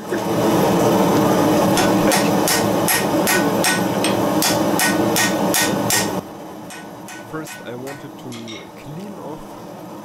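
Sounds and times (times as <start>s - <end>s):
gas forge burner roaring: 0.0s - 10.0s
hammer blow on anvil: 1.7s - 8.7s.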